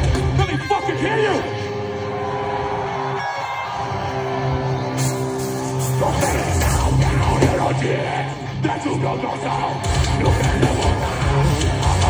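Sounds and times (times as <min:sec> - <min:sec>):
drums: 0:00.0 - 0:12.0.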